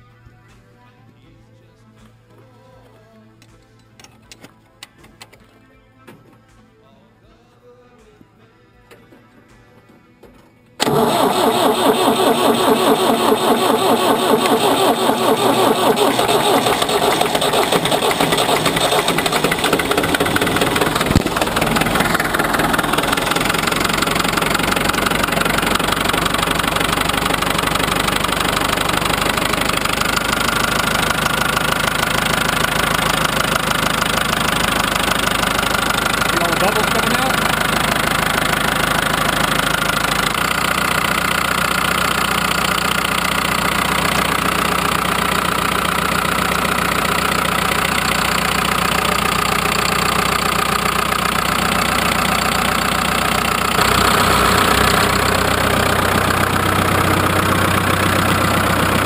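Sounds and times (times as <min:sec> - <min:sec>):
diesel tractor engine running: 0:10.8 - 0:59.0.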